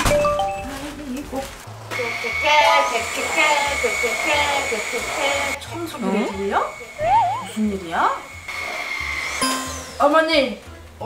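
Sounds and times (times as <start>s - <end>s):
soft background music: 0.0s - 11.0s
vacuum cleaner whine: 1.8s - 10.2s.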